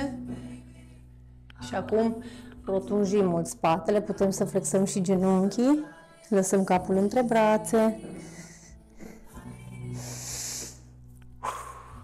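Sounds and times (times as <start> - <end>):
background music low note: 0.0 - 12.0
woman breathing out: 10.0 - 12.0.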